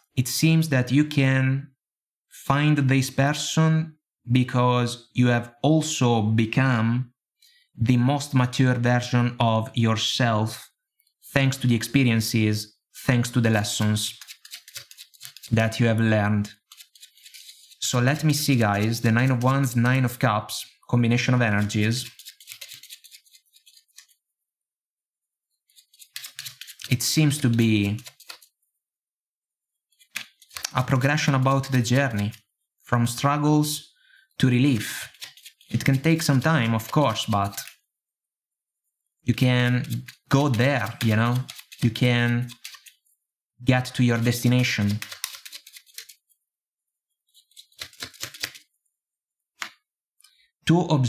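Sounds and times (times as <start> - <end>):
person speaking: 0.0 - 1.7, 2.4 - 7.1, 7.8 - 23.1, 26.2 - 28.4, 30.1 - 37.8, 39.2 - 42.9, 43.6 - 46.0, 50.6 - 51.0
cards being handled: 13.5 - 20.3, 21.1 - 24.2, 25.7 - 28.6, 29.9 - 32.4, 34.5 - 37.8, 39.3 - 43.0, 43.8 - 46.4, 47.3 - 48.7.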